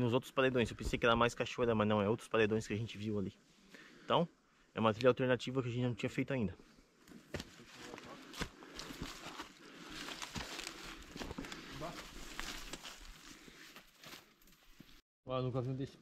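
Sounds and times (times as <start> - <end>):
plants and clothing rustling: 7.0 - 15.0
twigs crackling: 7.0 - 15.0
footsteps crunching on dry leaves: 7.3 - 15.0.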